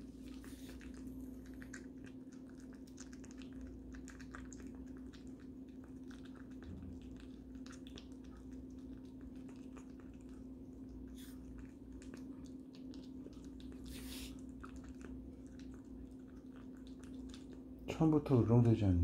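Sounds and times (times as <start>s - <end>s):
puppy crunching dry kibble: 0.0s - 17.9s
steady low hum: 0.0s - 19.0s.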